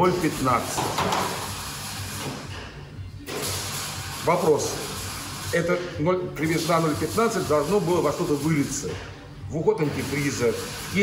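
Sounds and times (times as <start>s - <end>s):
steady workshop hiss: 0.0s - 11.0s.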